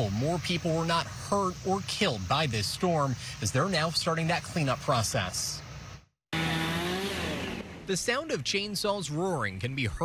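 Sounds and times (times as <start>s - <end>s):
chainsaw roaring: 6.3s - 7.9s.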